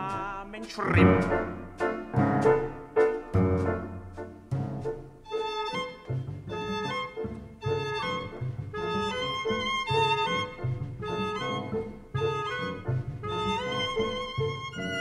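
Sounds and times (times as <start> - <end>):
walking bass line: 0.0 - 5.0
jazz chamber ensemble playing: 0.9 - 15.0.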